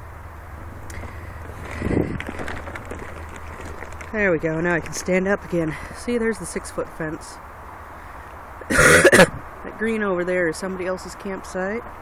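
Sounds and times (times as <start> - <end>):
steady low rumble: 0.0 - 8.1
camera handling rustling: 0.9 - 4.1.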